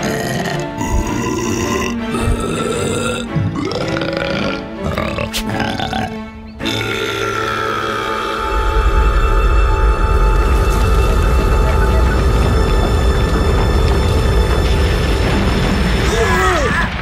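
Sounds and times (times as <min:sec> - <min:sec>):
cartoon burp-like grunts: 0:00.0 - 0:08.3
background music: 0:00.0 - 0:17.0.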